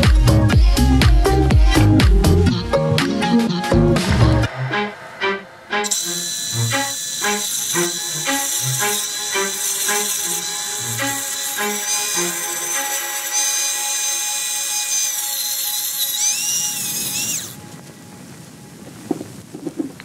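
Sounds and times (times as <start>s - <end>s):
background music with beat: 0.0s - 7.4s
disc sander grinding concrete: 5.8s - 17.6s.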